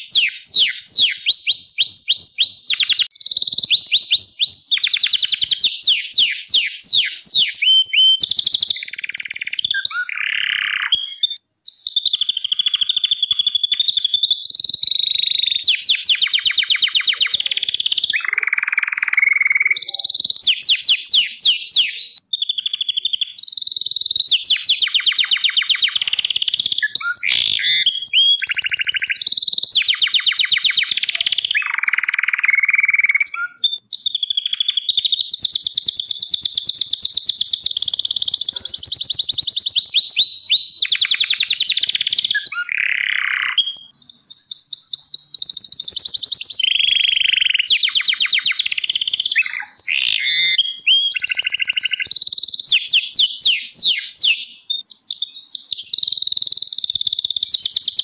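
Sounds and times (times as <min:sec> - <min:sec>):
canary singing trills: 0:00.0 - 0:58.0.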